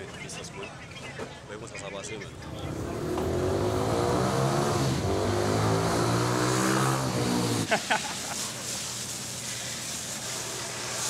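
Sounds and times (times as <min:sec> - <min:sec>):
large vehicle engine revving: 0:02.5 - 0:07.7.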